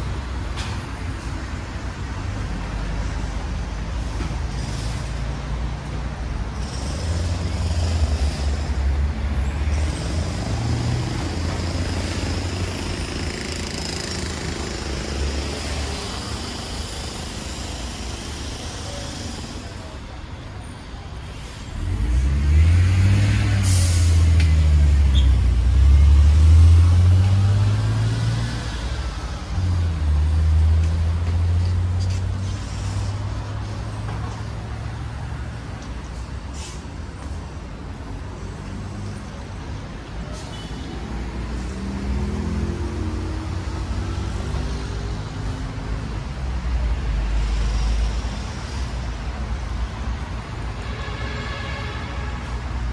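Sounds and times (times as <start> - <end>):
street traffic: 0.0 - 52.9
air-brake hiss: 23.6 - 24.3, 32.1 - 33.8, 36.4 - 37.2.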